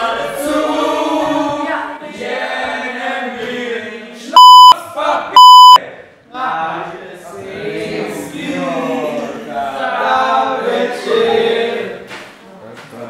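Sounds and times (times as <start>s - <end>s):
voices singing: 0.0s - 12.1s
censor bleeps: 4.4s - 4.8s, 5.4s - 5.8s.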